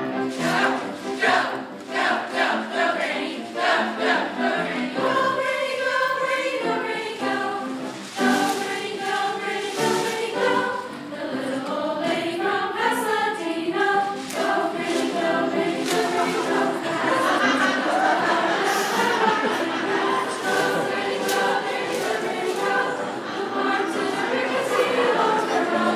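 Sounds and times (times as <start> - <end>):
school chorus singing: 0.0 - 25.9.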